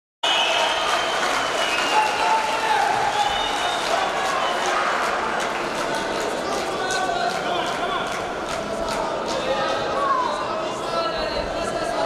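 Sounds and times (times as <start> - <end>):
crowd applauding and cheering: 0.2 - 9.8.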